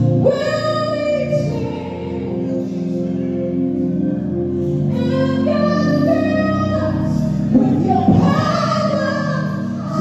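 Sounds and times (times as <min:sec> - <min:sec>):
woman singing gospel: 0:00.0 - 0:04.1, 0:04.8 - 0:10.0.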